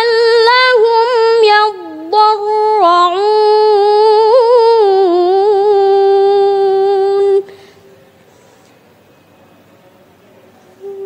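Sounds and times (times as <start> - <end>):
person chanting a long vowel: 10.8 - 11.0.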